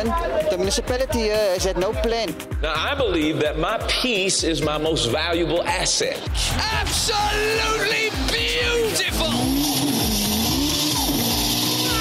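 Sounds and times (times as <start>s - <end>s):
fast steady beat: 0.0s - 12.0s.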